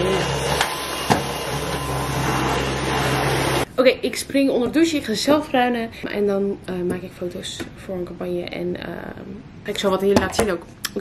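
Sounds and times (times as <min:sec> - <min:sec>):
stick vacuum cleaner running: 0:00.0 - 0:03.7.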